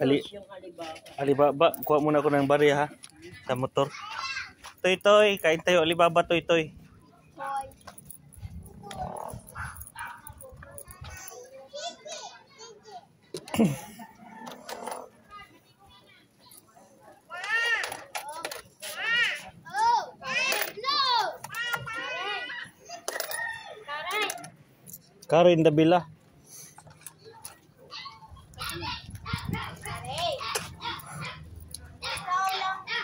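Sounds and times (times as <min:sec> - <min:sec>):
dog barking: 0:09.6 - 0:10.3.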